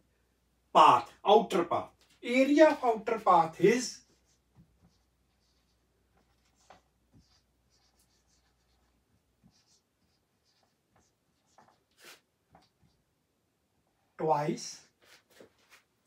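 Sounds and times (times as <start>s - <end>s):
marker pen writing on whiteboard: 3.7s - 13.1s.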